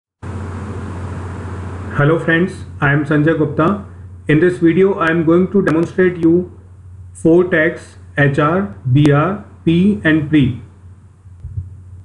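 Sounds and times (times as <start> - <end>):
low hum with hiss: 0.2 - 12.0.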